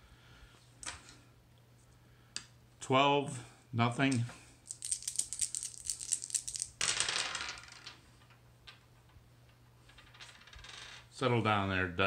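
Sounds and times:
dice clattering on table: 4.1s - 8.8s
dice rattling when shaken: 4.6s - 8.0s.

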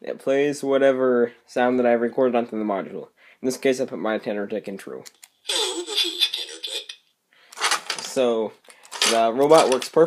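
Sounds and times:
voice through tinny speaker: 5.5s - 7.0s.

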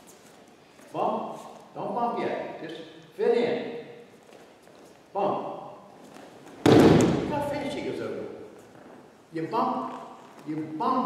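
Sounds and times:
body thudding onto mats: 6.6s - 7.3s.

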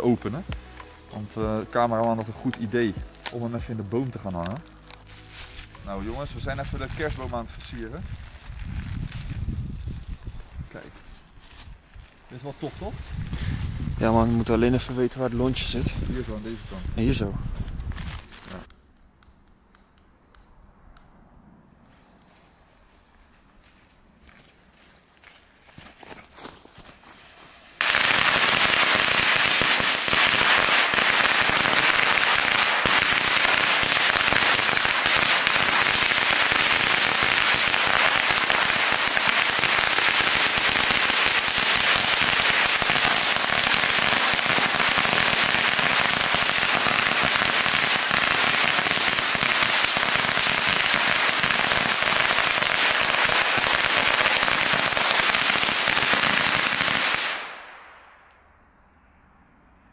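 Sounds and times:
firecracker string rattling: 0.0s - 10.7s, 27.8s - 57.6s.

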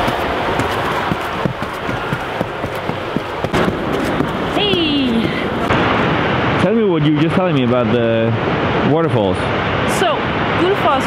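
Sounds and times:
footsteps on wooden stairs: 0.0s - 5.7s
loud steady rushing noise: 0.0s - 11.0s.

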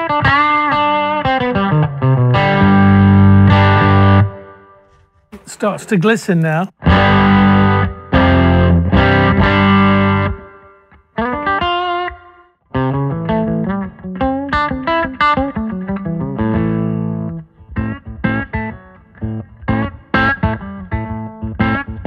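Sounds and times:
electric guitar playing: 0.0s - 4.6s, 6.8s - 22.0s.

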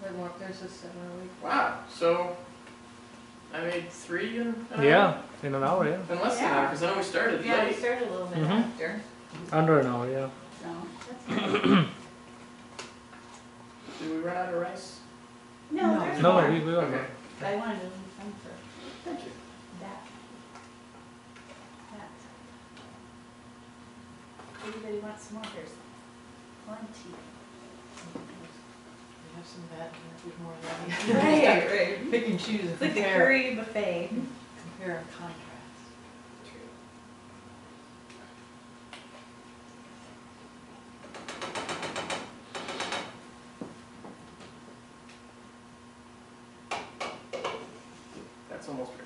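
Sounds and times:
low room hum: 0.0s - 49.0s.

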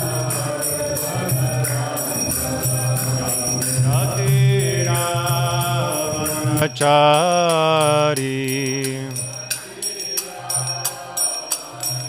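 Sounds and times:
man chanting prayers: 0.0s - 9.5s
hand cymbals ringing: 0.0s - 12.0s.

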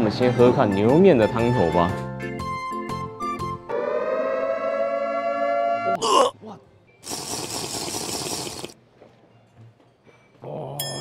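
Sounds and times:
harsh rattling hiss: 7.0s - 8.8s.

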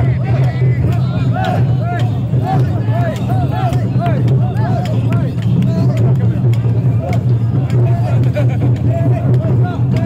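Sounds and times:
crowd chanting calls: 0.0s - 10.0s
crowd rumble: 0.0s - 10.0s.

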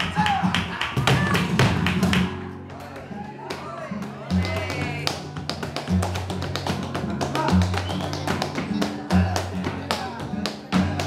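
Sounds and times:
flamenco guitar: 0.0s - 11.0s
hand claps: 0.0s - 11.0s.

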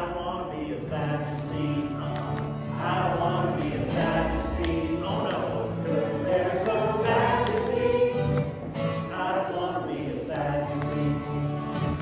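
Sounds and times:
congregation singing: 0.0s - 12.0s.

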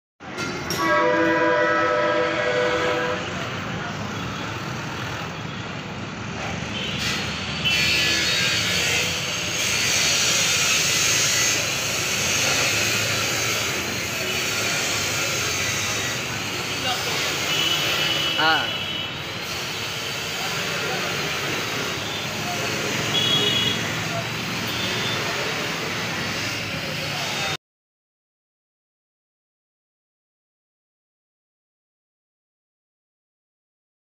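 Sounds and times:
street traffic noise: 0.2s - 27.6s
vehicle horn chord: 0.7s - 3.5s, 23.1s - 23.9s.

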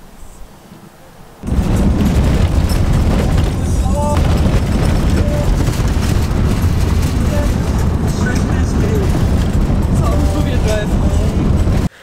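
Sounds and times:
tyres rumbling on gravel: 1.4s - 12.0s.

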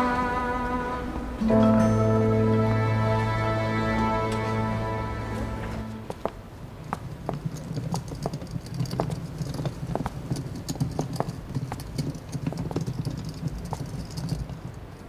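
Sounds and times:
steady low rumble: 0.0s - 7.5s.

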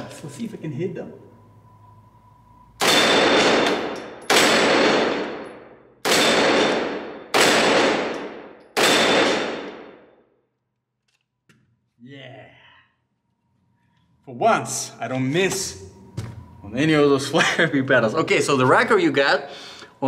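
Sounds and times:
gunshots echoing indoors: 2.7s - 10.6s.

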